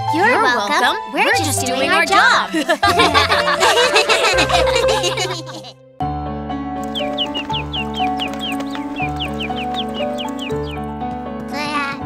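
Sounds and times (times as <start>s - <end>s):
light cartoon background music: 0.0s - 12.0s.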